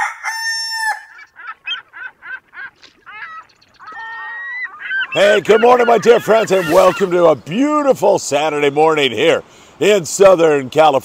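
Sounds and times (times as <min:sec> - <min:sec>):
rooster crowing: 0:00.0 - 0:01.2
short clucking calls: 0:01.1 - 0:07.5.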